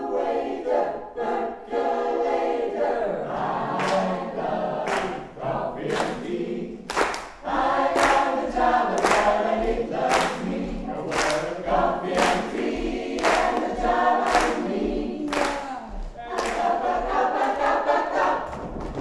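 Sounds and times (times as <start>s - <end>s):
mixed choir singing swing tune: 0.0s - 19.0s
hand claps: 3.8s - 4.2s, 4.8s - 5.2s, 5.9s - 16.8s.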